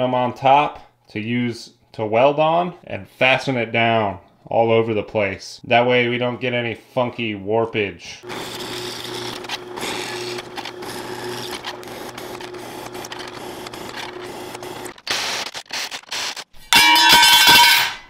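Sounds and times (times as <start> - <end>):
drill press cutting metal: 8.2 - 16.4.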